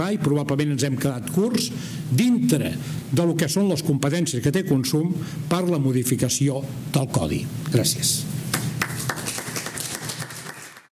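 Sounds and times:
audience applauding: 8.5 - 10.9.

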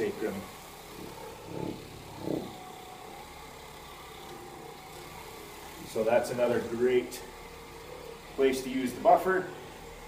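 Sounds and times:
buffer motor humming: 0.0 - 10.0.

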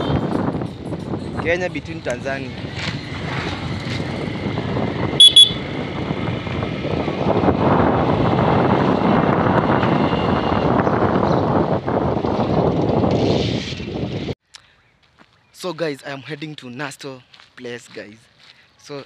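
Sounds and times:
wind noise: 0.0 - 14.4
horn beeps: 5.2 - 5.6.

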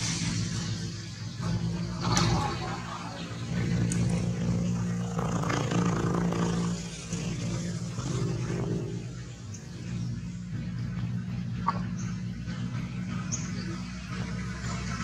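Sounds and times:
low motor hum: 0.0 - 15.0
faint voices: 1.7 - 5.7.

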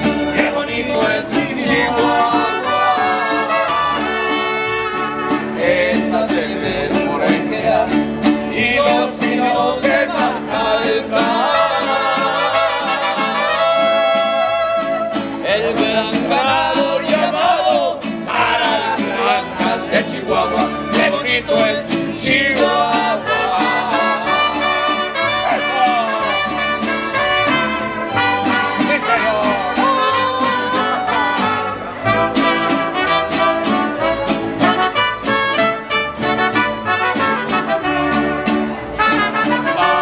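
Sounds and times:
strummed guitars: 0.0 - 40.0.

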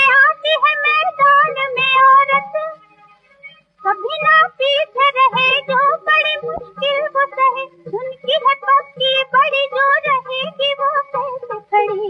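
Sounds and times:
woman singing high melody: 0.0 - 2.8, 3.8 - 12.0
low musical accompaniment: 0.0 - 12.0.

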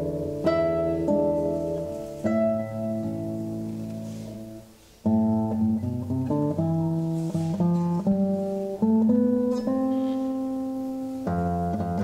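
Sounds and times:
classical guitar duet: 0.0 - 12.0.

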